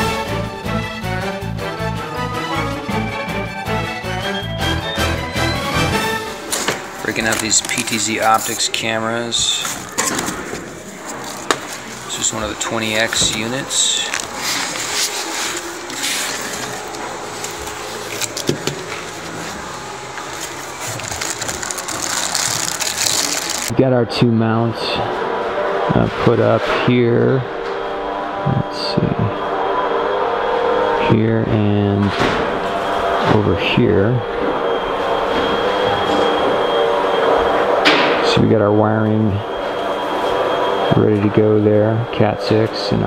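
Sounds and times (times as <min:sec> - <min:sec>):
mechanical drone with held tones: 0:00.0 - 0:43.0
thin high whine: 0:05.4 - 0:43.0
plastic packaging crinkling: 0:06.5 - 0:23.7.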